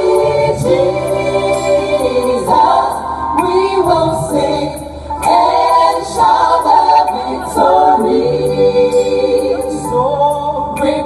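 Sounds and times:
gospel choir singing: 0:00.0 - 0:11.0.

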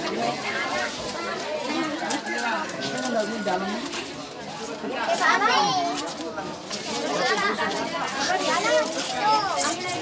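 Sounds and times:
adult crowd conversation: 0:00.0 - 0:10.0
children calling and chattering: 0:00.0 - 0:10.0.

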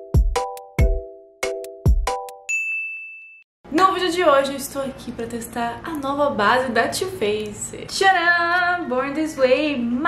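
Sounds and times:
high ding ringing: 0:02.5 - 0:03.5.

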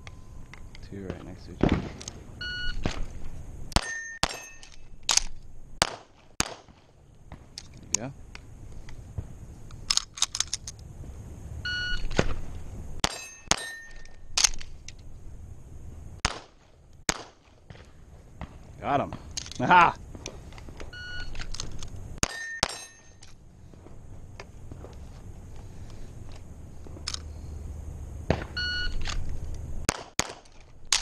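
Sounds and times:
metallic ring of steel target: 0:03.8 - 0:05.0, 0:13.0 - 0:14.4, 0:22.2 - 0:23.2
pistol shots: 0:03.8 - 0:07.4, 0:16.2 - 0:19.3, 0:29.9 - 0:31.0.

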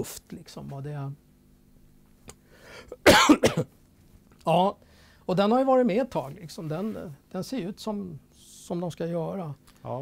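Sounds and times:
person coughing: 0:02.9 - 0:03.7.

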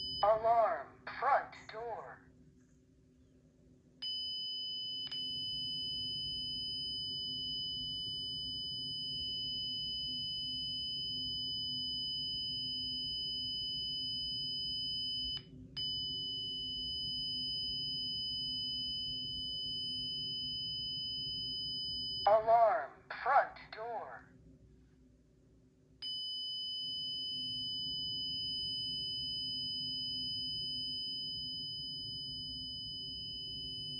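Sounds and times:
high-pitched alarm siren: 0:04.1 - 0:22.8, 0:26.1 - 0:33.9.

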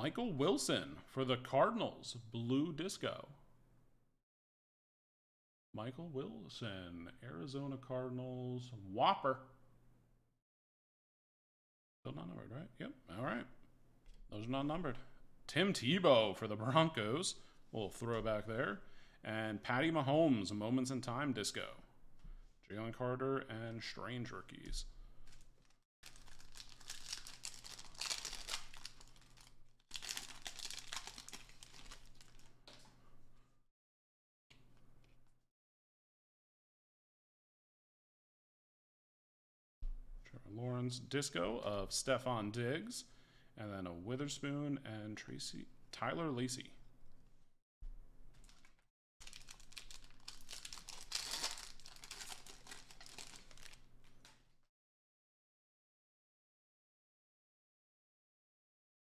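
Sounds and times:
plastic wrapper tearing and crinkling: 0:25.2 - 0:32.9, 0:48.4 - 0:54.4.

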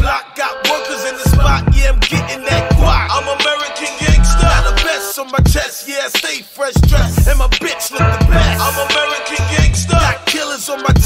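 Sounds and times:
rapped vocals: 0:00.0 - 0:11.0
heavy bass and drum beat: 0:01.2 - 0:11.0.

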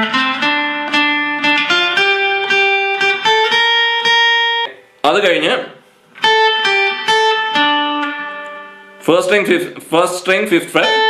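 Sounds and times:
acoustic guitar plucked notes: 0:00.0 - 0:05.0, 0:05.8 - 0:09.8, 0:10.7 - 0:11.0.

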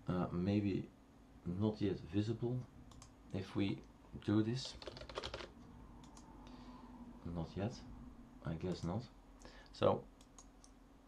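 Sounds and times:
computer keyboard typing: 0:02.9 - 0:03.1, 0:04.6 - 0:06.3.

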